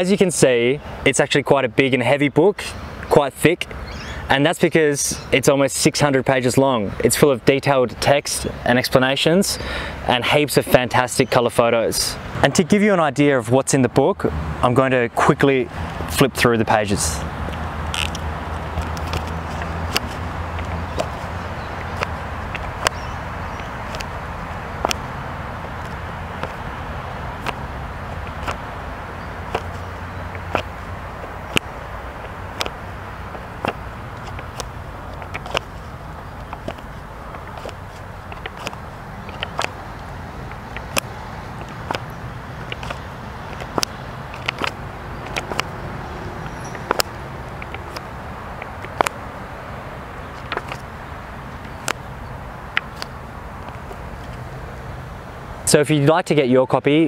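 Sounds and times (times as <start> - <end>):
book pages flipping: 17.5 - 23.0, 23.6 - 24.2, 25.6 - 26.6, 27.4 - 28.6, 29.4 - 49.2, 50.4 - 50.9, 51.6 - 52.1, 52.7 - 54.4.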